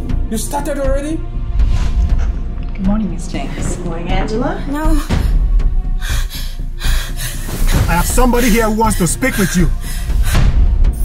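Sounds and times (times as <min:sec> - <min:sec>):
film score music: 0:00.0 - 0:11.0.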